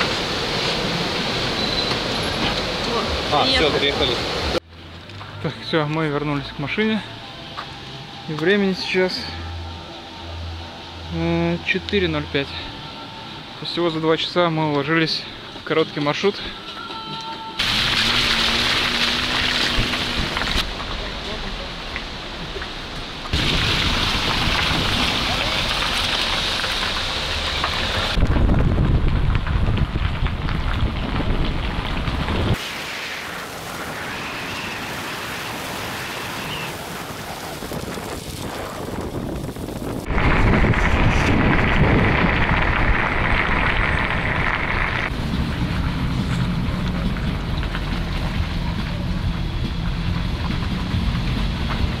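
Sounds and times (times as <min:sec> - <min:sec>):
car tyre and engine noise: 0:00.0 - 0:16.2, 0:17.6 - 0:52.0
wind on microphone: 0:28.1 - 0:32.6, 0:36.4 - 0:47.4.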